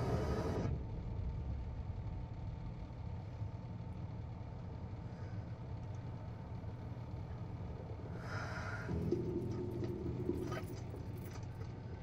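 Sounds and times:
car engine rumble from inside cabin: 8.9 - 12.0.

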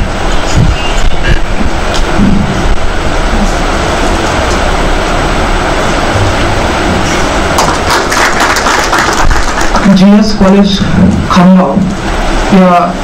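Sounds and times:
crowd clapping: 7.5 - 10.4.

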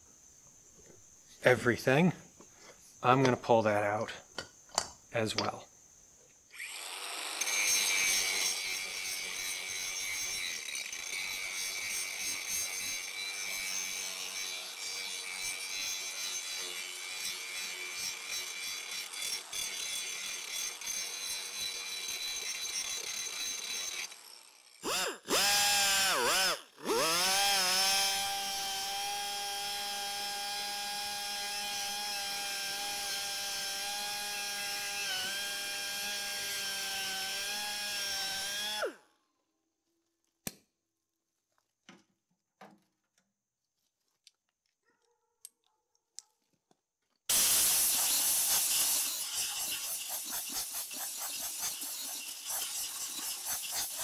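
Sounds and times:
angle grinder whining: 6.5 - 39.0, 47.3 - 54.0
die grinder spinning: 6.5 - 39.0, 47.3 - 54.0.

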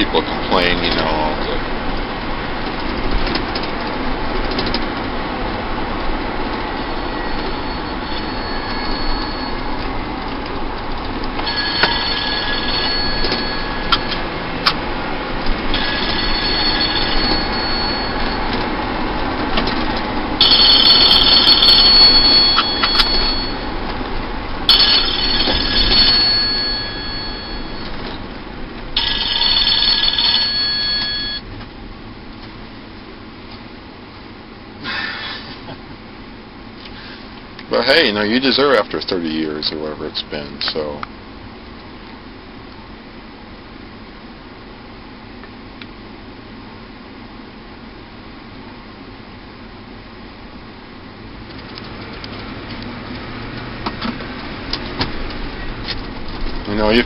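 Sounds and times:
road and engine noise: 0.0 - 57.0
high ringing squeal: 6.4 - 10.2, 11.4 - 14.4, 15.6 - 19.1, 20.4 - 23.9, 24.6 - 28.3, 29.0 - 31.5.

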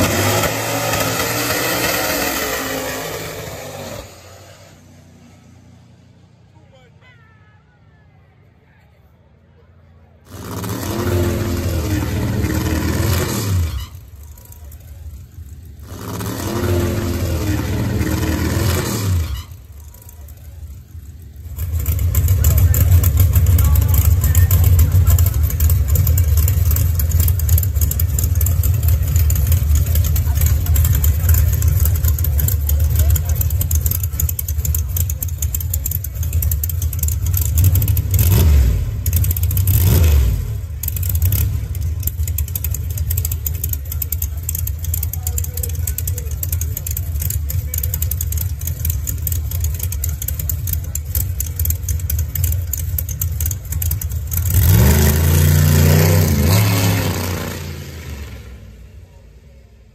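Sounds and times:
engine revving at full throttle: 0.0 - 4.8, 10.3 - 13.8, 15.8 - 20.3, 21.4 - 58.7
car engine idling: 0.0 - 59.9.

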